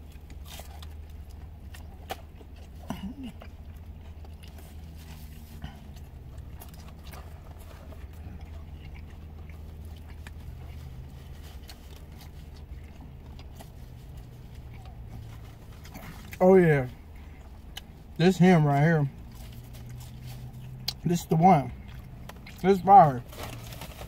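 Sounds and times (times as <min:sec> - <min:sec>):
man chewing food: 0:00.0 - 0:24.0
steady low hum: 0:00.0 - 0:24.0.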